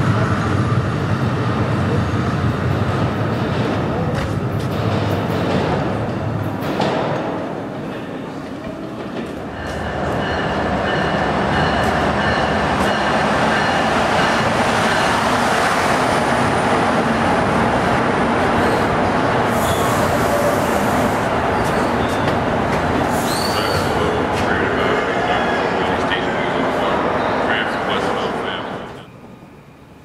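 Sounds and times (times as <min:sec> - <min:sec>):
train wheels rumbling on rail: 0:00.0 - 0:29.1
high wheel squeals: 0:23.1 - 0:24.0.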